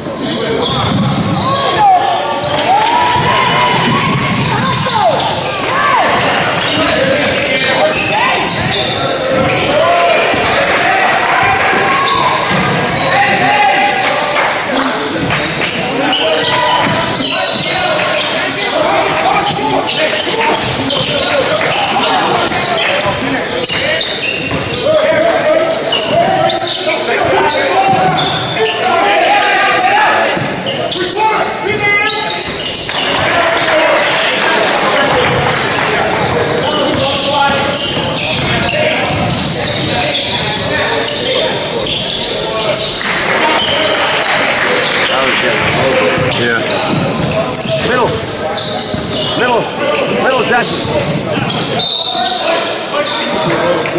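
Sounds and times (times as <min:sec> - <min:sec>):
echoing voices: 0:00.0 - 0:53.9
basketball bouncing on court: 0:02.4 - 0:05.2, 0:22.4 - 0:25.2, 0:36.2 - 0:40.7, 0:45.6 - 0:49.3.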